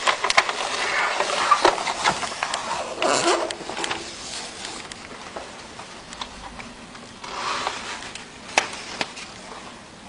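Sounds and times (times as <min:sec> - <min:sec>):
laminating film and paper crackling: 0:00.0 - 0:06.2.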